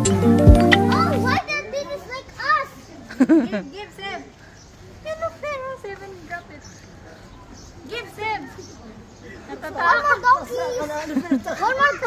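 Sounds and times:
music with held notes: 0.0s - 1.4s
young children chattering: 0.6s - 12.0s.

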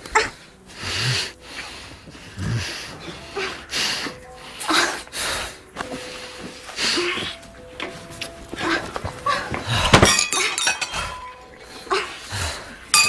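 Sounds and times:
gasps and heavy breaths: 0.0s - 12.9s
glasses clinking on a table: 8.6s - 11.7s
glass breaking crash: 9.9s - 11.5s.

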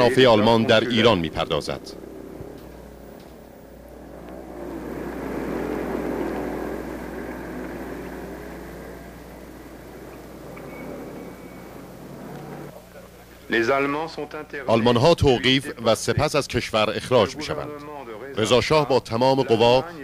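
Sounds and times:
vehicle engine passing by: 0.0s - 12.7s
steady low hum: 0.0s - 20.0s.

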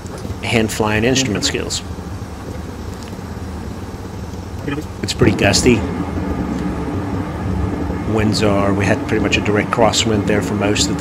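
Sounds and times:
low hum of jet engines: 0.0s - 11.0s
rush of airflow: 1.5s - 11.0s.

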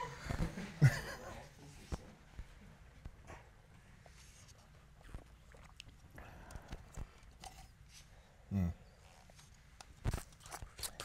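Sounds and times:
sipping and swallowing water: 4.6s - 7.9s.

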